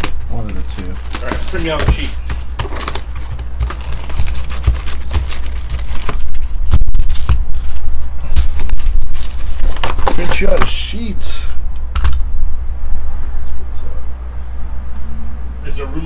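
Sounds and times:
card packs rustling and crinkling: 0:00.0 - 0:10.8.

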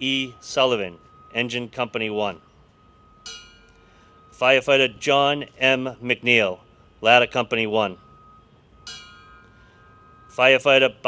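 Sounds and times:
bell struck and ringing: 0:00.0 - 0:06.5, 0:07.9 - 0:11.0.

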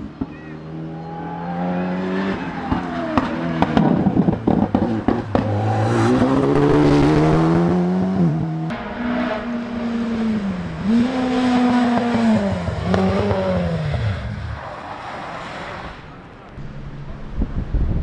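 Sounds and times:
rally car engine at full throttle: 0:00.0 - 0:18.0
car accelerating through gears: 0:00.7 - 0:14.7
exhaust pops and crackles: 0:02.7 - 0:05.6.

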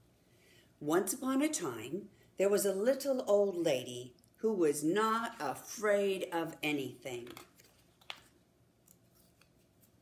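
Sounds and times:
paper page turning: 0:07.2 - 0:10.0.

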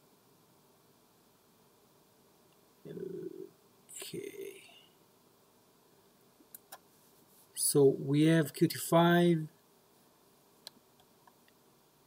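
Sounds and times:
man humming: 0:02.9 - 0:04.8
man mumbling: 0:02.9 - 0:04.8.

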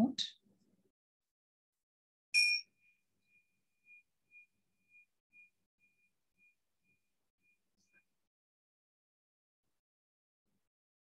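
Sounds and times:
bell ringing: 0:02.4 - 0:02.7.

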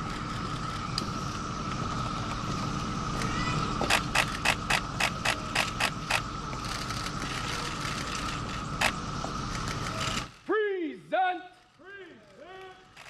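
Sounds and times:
steady outdoor hum: 0:00.0 - 0:13.0.

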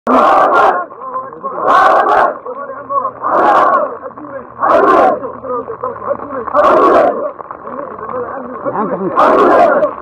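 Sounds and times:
soldiers shouting a chant: 0:00.1 - 0:07.4, 0:09.0 - 0:10.0.

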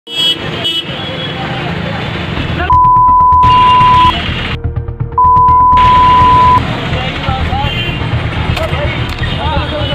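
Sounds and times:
street traffic: 0:00.1 - 0:09.9
censor bleep: 0:02.7 - 0:04.1, 0:05.2 - 0:06.6
vehicle horn toots: 0:03.4 - 0:04.2.

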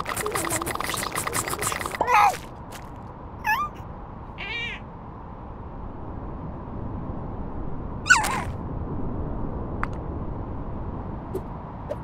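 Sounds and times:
cartoon squeaky voice sounds: 0:00.0 - 0:02.4, 0:03.4 - 0:03.8, 0:04.4 - 0:04.8, 0:08.1 - 0:08.5.

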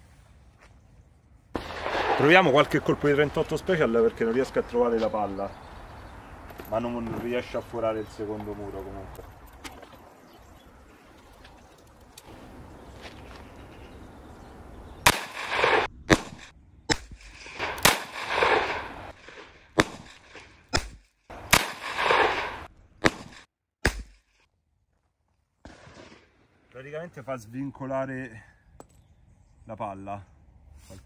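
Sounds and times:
revolver gunshots with ringing echo: 0:01.6 - 0:05.2, 0:15.0 - 0:24.2.

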